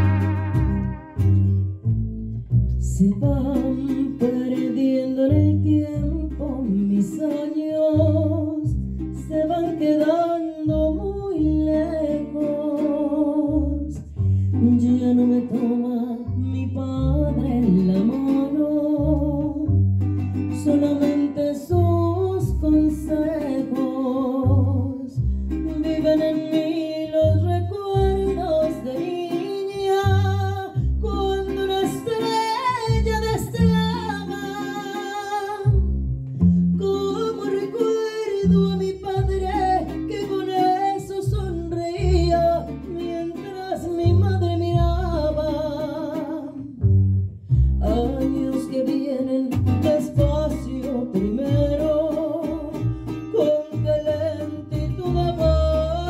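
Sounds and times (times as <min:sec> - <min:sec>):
woman singing into microphone: 0:00.0 - 0:01.4, 0:02.8 - 0:14.0, 0:14.6 - 0:19.7, 0:20.6 - 0:35.8, 0:36.8 - 0:46.8, 0:47.8 - 0:56.0
deep plucked bass line: 0:00.0 - 0:04.6, 0:05.3 - 0:09.8, 0:10.5 - 0:12.6, 0:13.2 - 0:37.6, 0:38.4 - 0:48.8, 0:49.5 - 0:56.0
mariachi band playing: 0:00.0 - 0:56.0
strummed guitars: 0:00.0 - 0:56.0.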